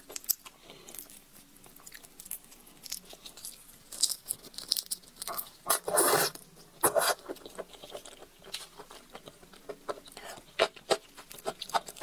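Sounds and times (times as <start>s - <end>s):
shrimp shell crackling: 0.0s - 6.4s.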